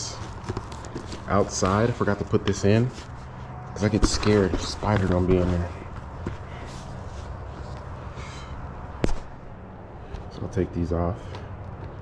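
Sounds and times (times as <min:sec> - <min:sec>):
plastic helmet rustling: 0:00.0 - 0:08.4.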